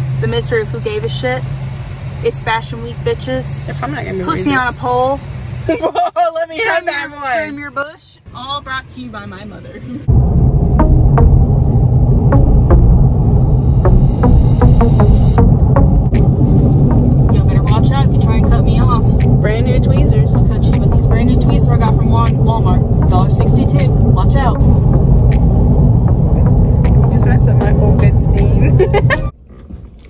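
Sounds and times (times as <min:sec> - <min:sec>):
car interior road rumble: 0:00.0 - 0:30.0
woman's voice: 0:00.2 - 0:01.5, 0:02.2 - 0:10.1, 0:27.1 - 0:29.3.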